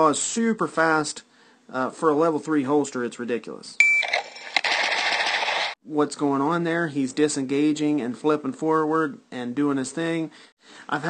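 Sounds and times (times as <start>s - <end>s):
rapid pistol shots: 4.6s - 5.8s.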